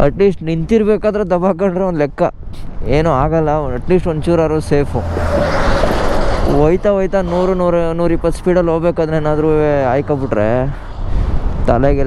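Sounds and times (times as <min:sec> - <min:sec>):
truck passing by: 0:04.3 - 0:08.2.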